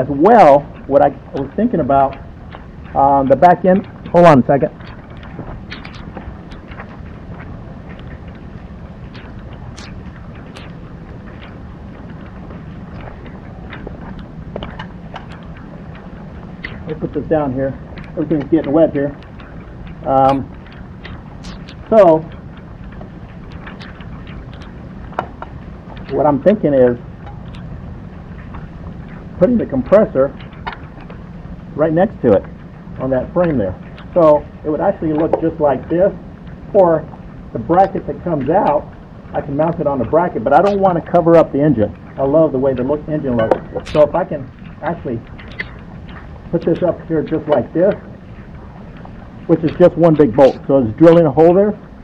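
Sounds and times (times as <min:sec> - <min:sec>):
rain falling: 0:00.0 - 0:28.2
raindrops ticking on surfaces: 0:00.0 - 0:52.0
steady low rumble: 0:00.0 - 0:52.0.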